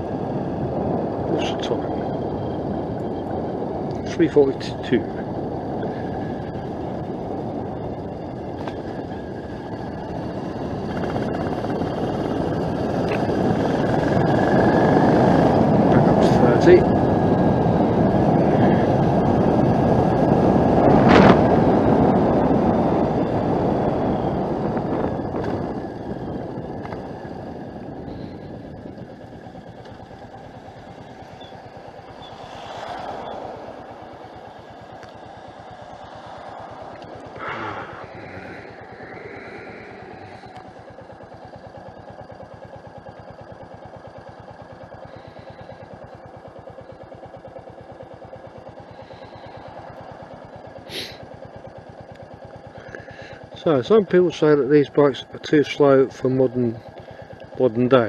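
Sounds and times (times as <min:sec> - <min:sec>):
motorcycle engine idling: 0:00.0 - 0:58.0
motorcycle engine slowing down: 0:00.0 - 0:58.0.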